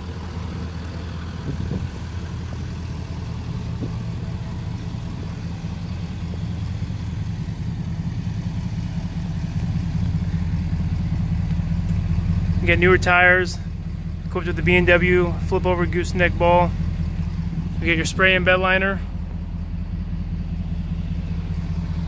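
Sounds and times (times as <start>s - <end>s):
diesel engine idling: 0.0s - 22.0s.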